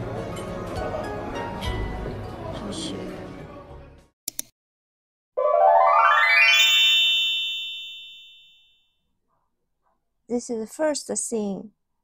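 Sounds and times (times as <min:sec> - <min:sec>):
ringing electronic chime: 0:05.4 - 0:08.8.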